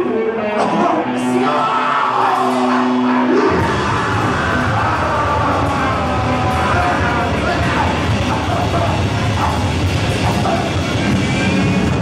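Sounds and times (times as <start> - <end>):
live rock band playing: 2.6 - 12.0.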